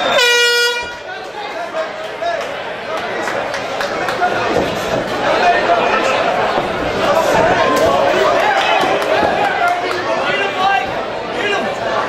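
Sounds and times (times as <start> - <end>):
crowd chatter: 0.0 - 12.0
air horn blast: 0.1 - 1.1.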